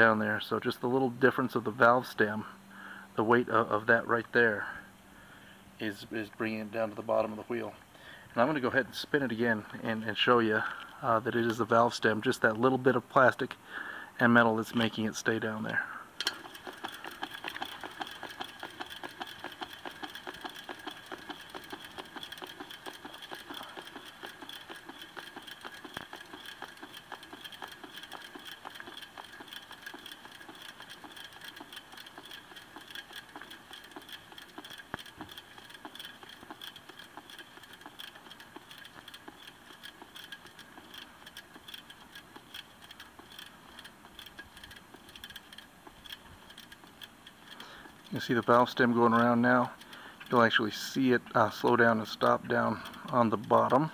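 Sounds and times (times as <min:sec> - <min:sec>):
faint steady whine: 0:00.0 - 0:53.9
bicycle wheel spinning ticking: 0:09.3 - 0:12.6, 0:14.6 - 0:53.9.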